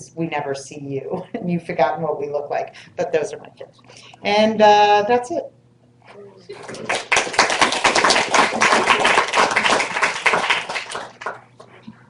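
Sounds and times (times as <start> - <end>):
audience applauding: 6.5 - 11.8.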